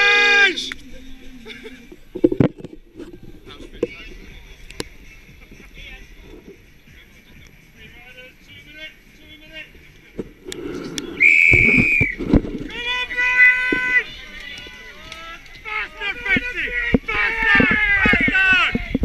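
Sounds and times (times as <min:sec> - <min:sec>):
shouts and cheers: 0:00.0 - 0:00.7, 0:12.7 - 0:19.0
wind: 0:00.0 - 0:19.0
quiet chatter: 0:00.5 - 0:19.0
whistle blast: 0:11.2 - 0:12.2.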